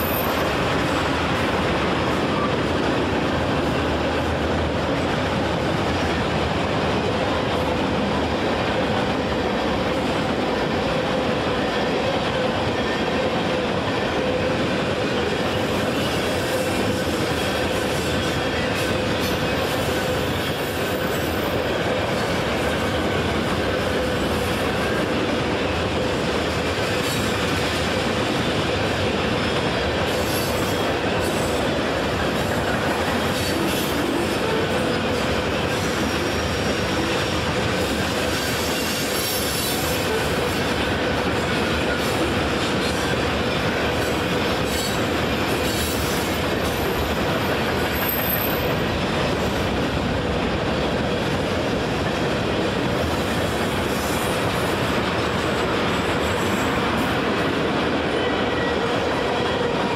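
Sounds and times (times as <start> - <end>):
train wheels rumbling on rail: 0.0 - 59.9.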